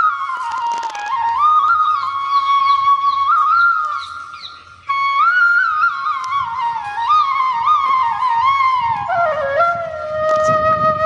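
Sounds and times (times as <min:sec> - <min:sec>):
flute melody: 0:00.0 - 0:11.0.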